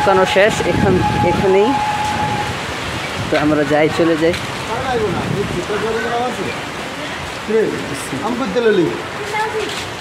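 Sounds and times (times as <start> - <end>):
held tone: 0.0 - 2.6
steady rain: 0.0 - 10.0.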